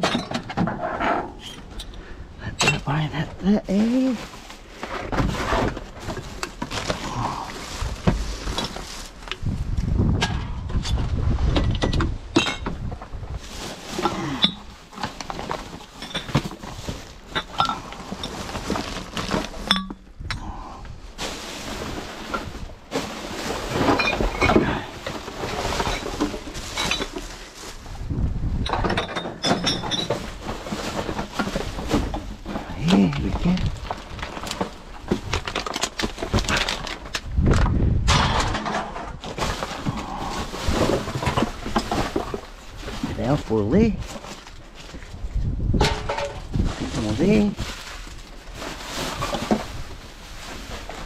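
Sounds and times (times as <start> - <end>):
bottles and cans clinking: 0.0 - 0.6, 11.6 - 12.9, 13.9 - 20.1, 22.2 - 27.2, 28.6 - 34.7, 45.8 - 46.5
plastic bags rustling and crinkling: 1.6 - 51.0.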